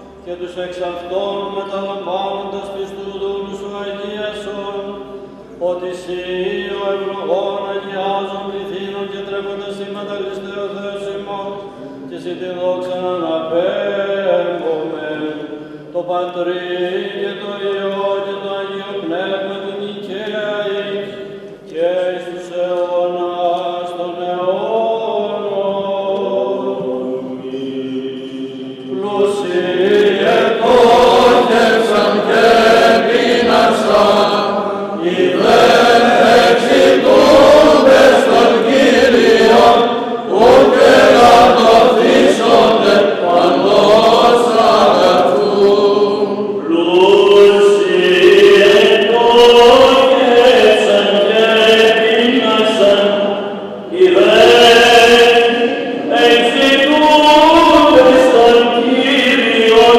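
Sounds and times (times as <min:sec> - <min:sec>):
group of voices chanting: 0:28.3 - 0:47.1.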